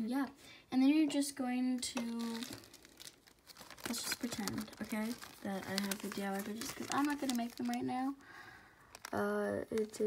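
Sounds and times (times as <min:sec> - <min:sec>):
plastic bag crinkling: 0:01.7 - 0:10.0.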